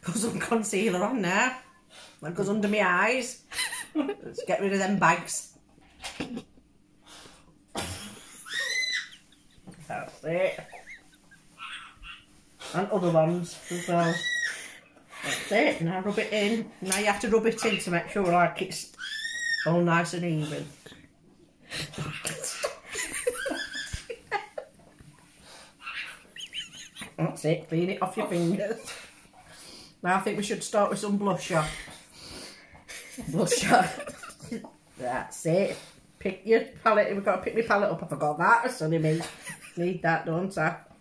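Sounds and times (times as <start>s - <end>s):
high-pitched squealing laugh: 3.5s - 4.2s, 8.2s - 9.7s, 10.5s - 12.3s, 13.7s - 14.8s, 22.0s - 24.7s, 25.8s - 27.2s
person giggling: 3.5s - 4.3s, 6.0s - 6.6s, 7.8s - 12.2s, 13.1s - 14.3s, 21.7s - 24.8s, 25.9s - 27.2s, 32.9s - 34.7s.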